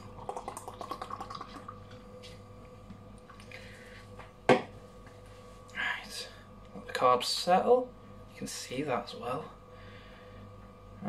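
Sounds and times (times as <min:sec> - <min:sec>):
beer pouring into glass: 0:00.0 - 0:02.0.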